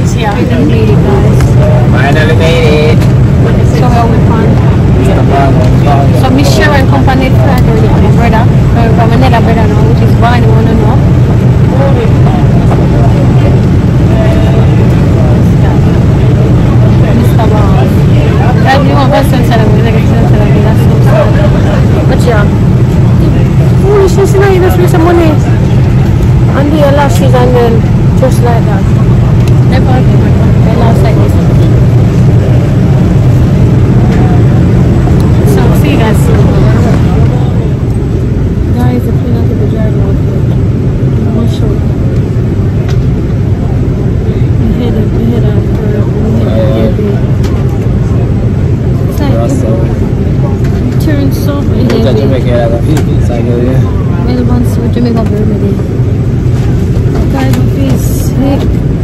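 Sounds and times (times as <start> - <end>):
airliner cabin hum: 0.0 - 59.0
indistinct voices: 0.0 - 59.0.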